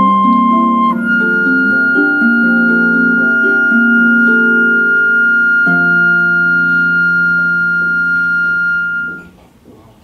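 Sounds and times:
flute holding high note: 0.0s - 9.3s
harp chord: 0.0s - 9.3s.

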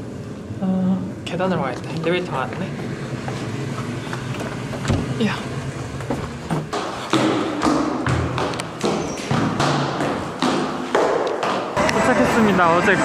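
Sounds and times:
echoing footsteps on hard floor: 5.8s - 11.8s.

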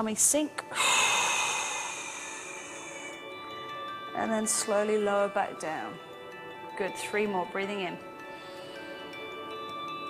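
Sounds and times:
faint background music: 0.0s - 10.0s
forceful breath out: 0.7s - 3.3s.

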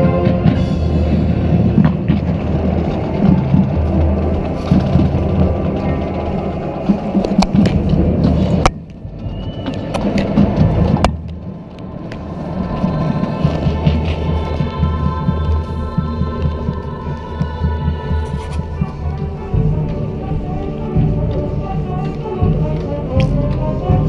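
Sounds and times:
air rumble on microphone: 0.0s - 24.0s
marching band playing: 0.0s - 24.0s.

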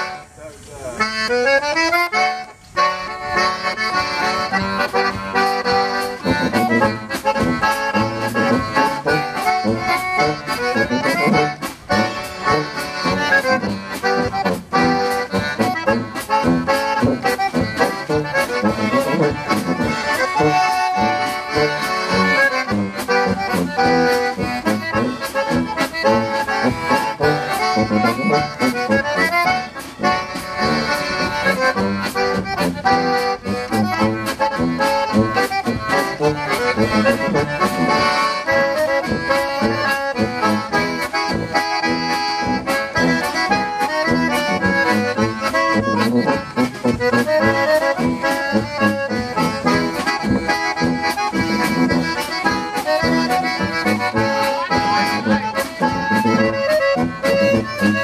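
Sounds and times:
tuba bass line: 0.0s - 0.4s, 1.0s - 58.0s
button concertina playing: 0.0s - 58.0s
drum kit: 4.0s - 58.0s.

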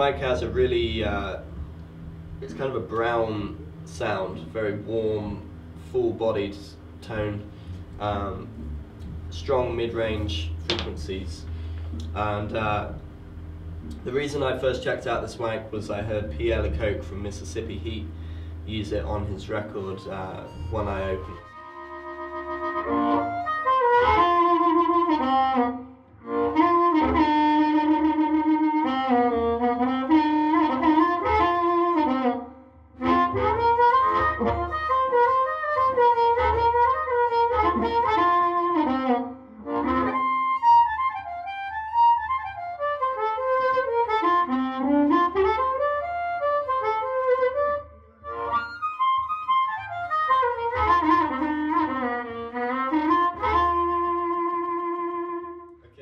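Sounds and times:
low hum: 0.0s - 23.4s
blues harmonica with bent notes: 0.0s - 55.9s.

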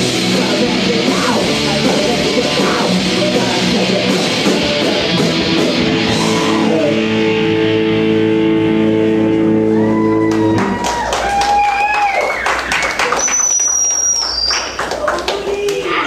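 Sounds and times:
distorted electric guitar chord: 0.0s - 9.7s
audience shouting and whooping: 5.9s - 7.1s, 9.4s - 16.0s
scattered clapping: 10.2s - 16.0s
high sliding whistle: 12.2s - 14.7s.

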